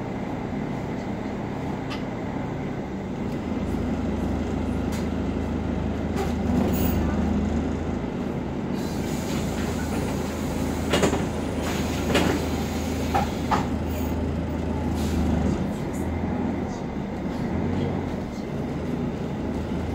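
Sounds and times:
bus diesel engine drone: 0.0s - 19.9s
bus body rattles: 3.3s - 19.9s.

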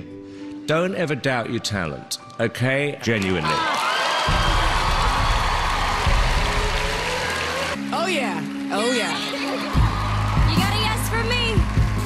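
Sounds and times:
audience cheering and applauding: 3.2s - 12.0s.

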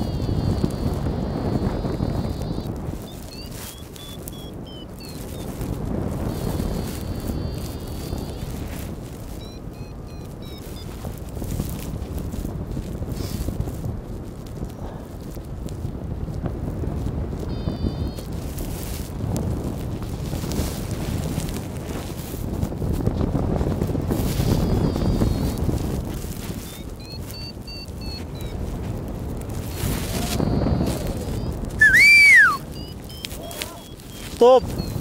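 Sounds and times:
wind buffeting microphone: 0.0s - 35.0s
faint high chirps: 30.3s - 35.0s
loud whistle: 31.8s - 33.9s.

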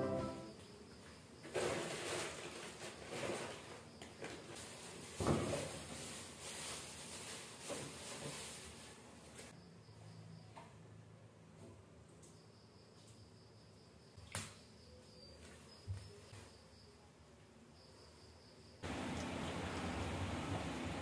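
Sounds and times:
plastic bags rustling: 1.5s - 9.5s.

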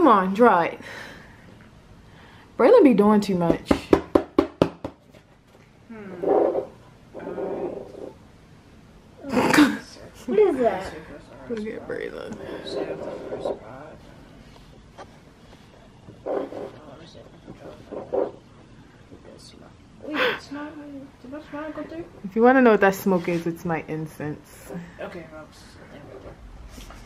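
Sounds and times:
knocks on a tabletop: 3.4s - 5.0s.

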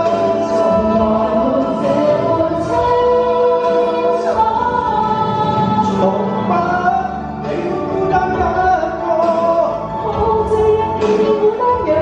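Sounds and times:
man and woman singing a pop ballad: 0.0s - 12.0s
musical accompaniment: 0.0s - 12.0s.

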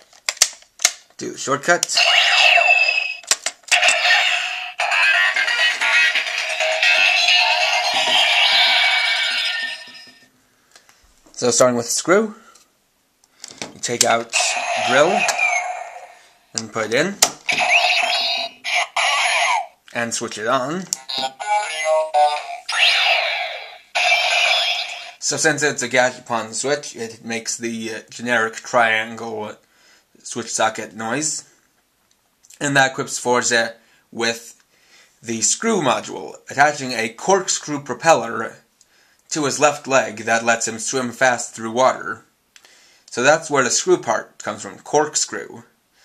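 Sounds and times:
electronic sound effect burst: 2.0s - 10.2s, 14.3s - 16.4s, 17.5s - 19.0s, 22.4s - 25.2s
toy synthesized music and tones: 2.0s - 10.2s, 17.5s - 19.7s, 21.0s - 25.2s.

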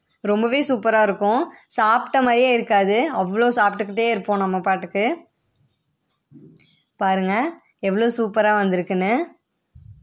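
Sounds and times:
faint low sound: 9.7s - 10.0s.

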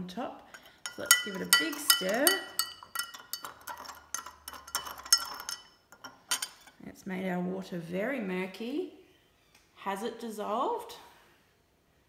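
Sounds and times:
teaspoon clinking against glass: 0.5s - 6.7s
glass ringing: 0.5s - 6.8s.

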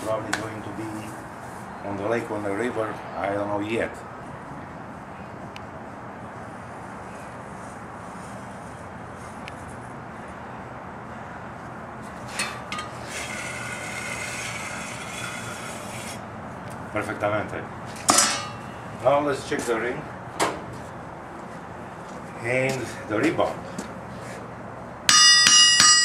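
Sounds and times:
low background noise: 0.0s - 26.0s
metal-on-metal scraping: 12.2s - 16.2s.

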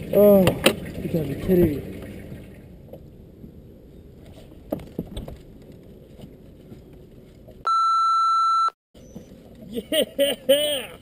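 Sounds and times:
boat on open water: 0.0s - 7.6s.

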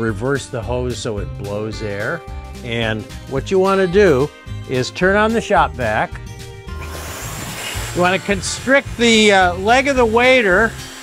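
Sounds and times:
air rushing from hose: 6.7s - 11.0s
shop vac motor running: 6.7s - 11.0s.

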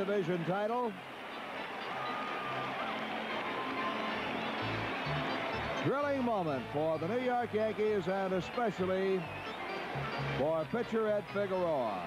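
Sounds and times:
stadium crowd cheering and shouting: 0.0s - 12.0s.

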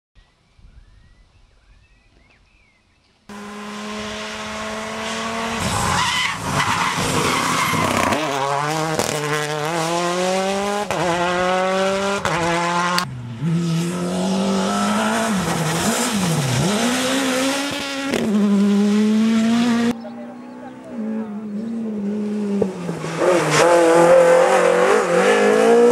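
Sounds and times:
rally car engine accelerating: 3.3s - 25.9s.

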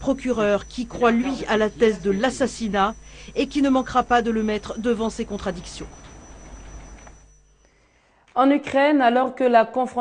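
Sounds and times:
low hum: 0.0s - 7.8s.

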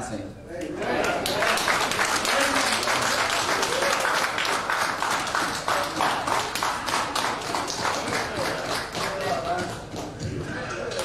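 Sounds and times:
crowd clapping: 1.0s - 11.0s.

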